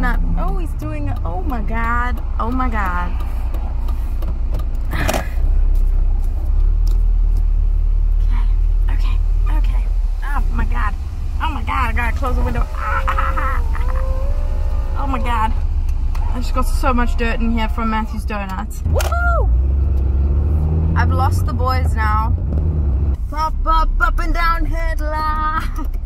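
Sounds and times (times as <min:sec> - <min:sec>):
car interior rumble: 0:00.0 - 0:26.0.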